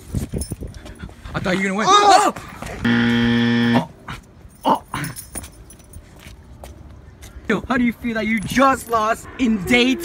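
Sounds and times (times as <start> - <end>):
lanyard jingling: 0.1 - 0.9, 4.5 - 6.2.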